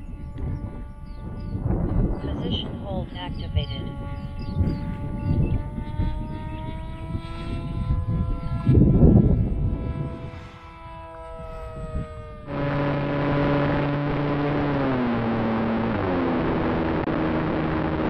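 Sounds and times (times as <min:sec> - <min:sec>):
electric motor and propeller whining: 0:00.0 - 0:18.0
low motor hum: 0:00.0 - 0:18.0
wind gusting on microphone: 0:00.0 - 0:18.0
rush of air: 0:10.0 - 0:10.9.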